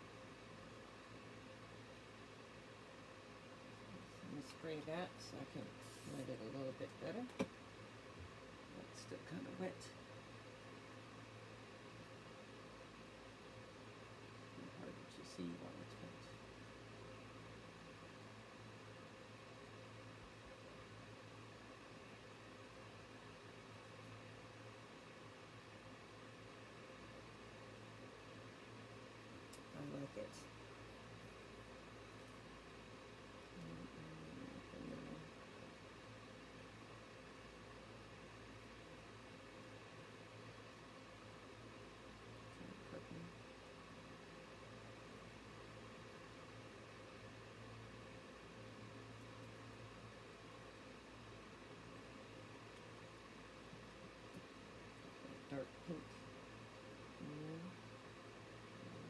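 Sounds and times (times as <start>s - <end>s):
low room hum: 0.0s - 59.0s.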